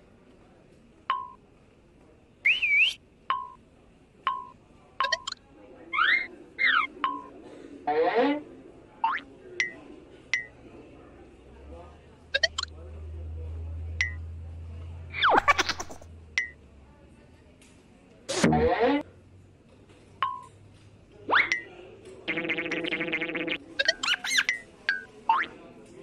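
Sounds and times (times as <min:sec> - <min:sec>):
cartoon whistle sound effects: 0:02.5 - 0:03.0.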